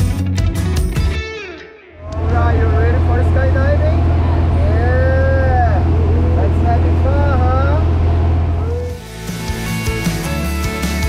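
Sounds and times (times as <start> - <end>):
voices talking: 2.0 - 9.0
aircraft engine droning: 2.0 - 9.8.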